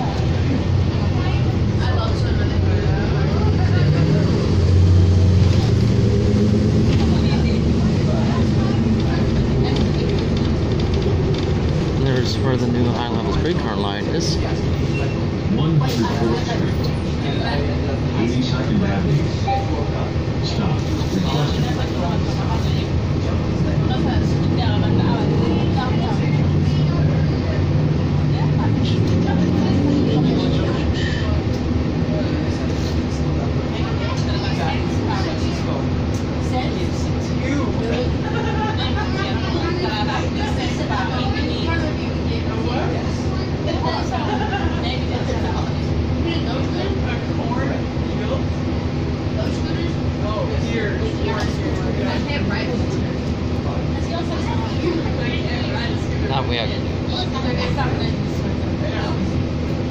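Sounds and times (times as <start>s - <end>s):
bus engine droning: 0.0s - 59.9s
faint passenger voices: 0.0s - 59.9s.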